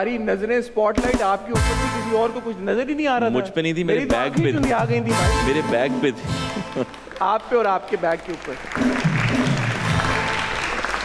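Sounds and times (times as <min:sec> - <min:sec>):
music playing: 0:01.0 - 0:07.2, 0:08.7 - 0:11.0
audience applauding: 0:05.3 - 0:11.0.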